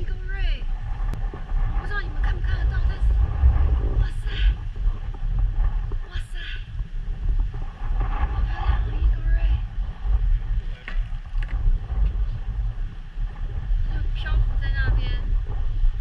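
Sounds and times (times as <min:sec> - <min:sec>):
voices: 0:00.0 - 0:00.7, 0:01.8 - 0:04.6, 0:06.0 - 0:06.8, 0:08.2 - 0:09.7, 0:13.9 - 0:15.3
wind buffeting microphone: 0:00.0 - 0:16.0.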